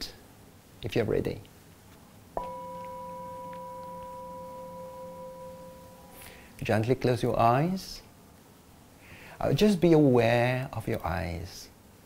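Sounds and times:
singing bowl ringing: 0:02.4 - 0:06.6.

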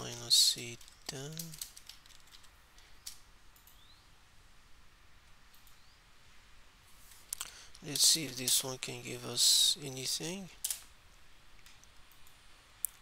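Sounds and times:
faint keyboard keystrokes: 0:00.8 - 0:03.8.

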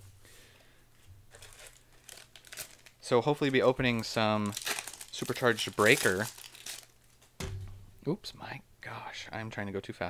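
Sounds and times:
trading cards rustling: 0:01.3 - 0:07.3.

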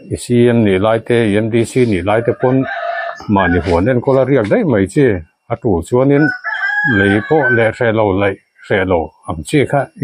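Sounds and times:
man talking: 0:00.0 - 0:10.0
rooster crowing: 0:02.1 - 0:03.9, 0:06.1 - 0:07.8.

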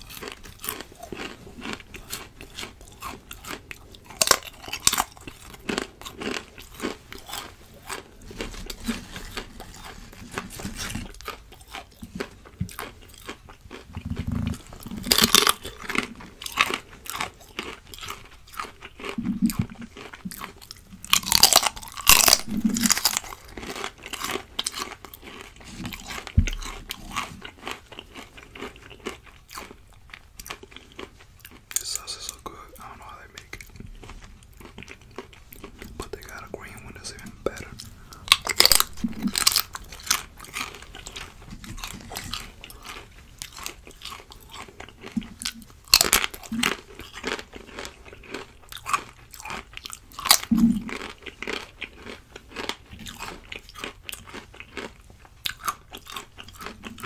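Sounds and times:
crunching fried chips: 0:00.0 - 0:57.0.

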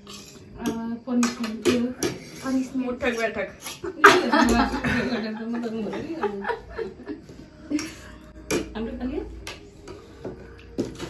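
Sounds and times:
woman talking: 0:00.6 - 0:06.7.

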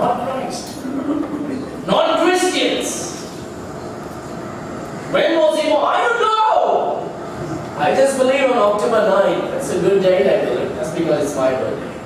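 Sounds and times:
room noise hiss and rumble: 0:00.0 - 0:12.0.

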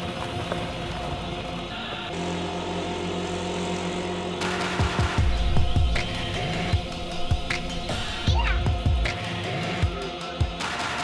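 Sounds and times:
motorbike engine passing: 0:00.0 - 0:08.3
background music: 0:00.0 - 0:11.0
steady low hum: 0:00.3 - 0:10.1.

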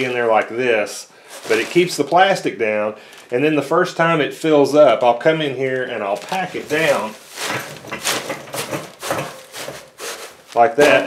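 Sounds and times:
plastic liner rustling: 0:00.0 - 0:11.0
wood shavings crunching: 0:00.0 - 0:11.0.

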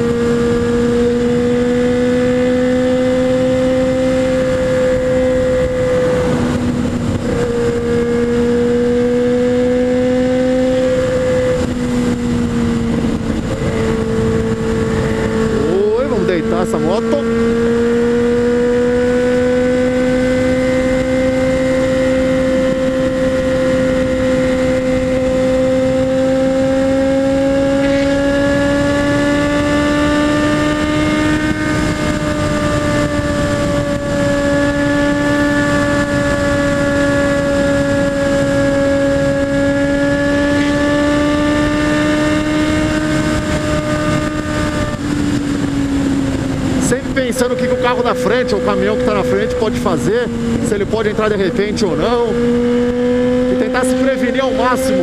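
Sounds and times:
motorcycle engine at high revs: 0:00.0 - 0:55.0
wind rush over microphone: 0:00.0 - 0:55.0.

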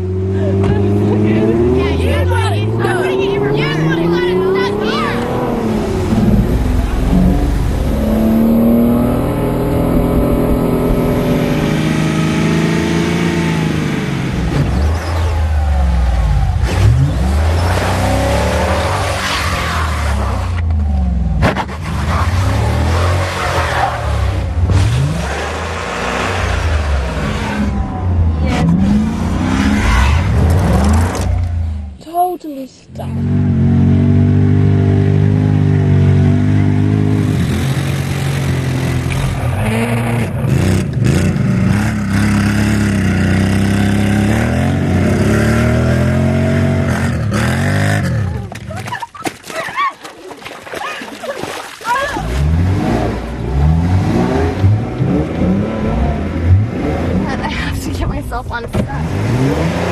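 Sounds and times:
car engines revving: 0:00.0 - 0:32.0, 0:32.9 - 0:48.8, 0:52.1 - 0:59.9.

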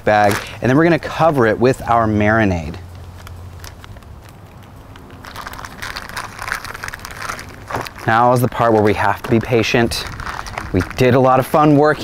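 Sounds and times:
plastic bag crinkling: 0:03.0 - 0:12.0
thick liquid pouring into bag: 0:05.2 - 0:11.6.

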